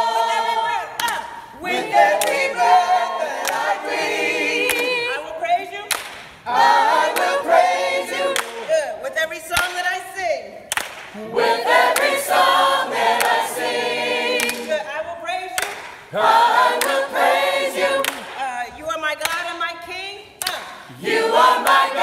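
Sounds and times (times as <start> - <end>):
gospel choir singing a cappella: 0.0 - 19.0, 20.4 - 22.0
hand claps: 1.0 - 2.7, 3.4 - 3.9, 4.6 - 5.0, 5.8 - 6.4, 7.0 - 7.5, 8.3 - 8.7, 9.5 - 10.0, 10.7 - 13.7, 14.3 - 14.8, 15.5 - 19.6, 20.4 - 21.0.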